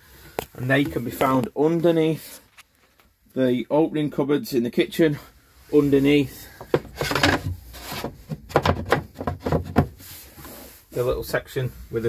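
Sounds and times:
floor panel knocks and scrapes: 0:06.6 - 0:10.0.

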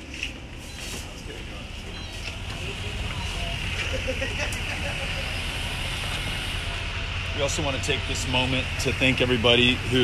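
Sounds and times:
faint voices: 0:00.9 - 0:10.0.

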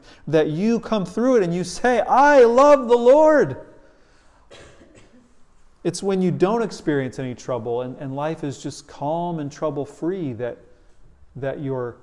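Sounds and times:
man speaking: 0:00.0 - 0:03.8, 0:05.8 - 0:12.0
man clearing throat: 0:04.5 - 0:05.3.

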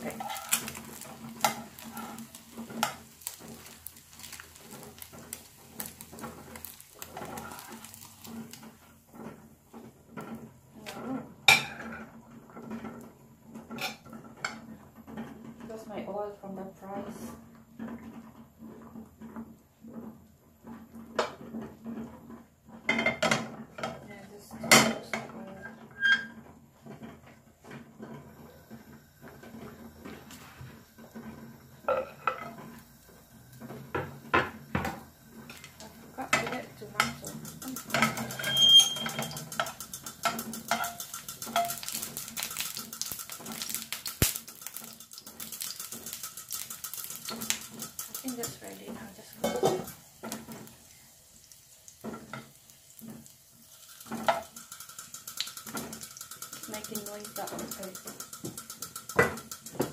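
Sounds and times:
metal utensils clinking on pans: 0:00.0 - 0:09.4, 0:11.5 - 0:12.9, 0:31.9 - 0:32.8, 0:35.5 - 0:50.8, 0:52.0 - 0:59.9
food sizzling in hot oil: 0:00.0 - 0:15.9, 0:28.2 - 0:59.9.

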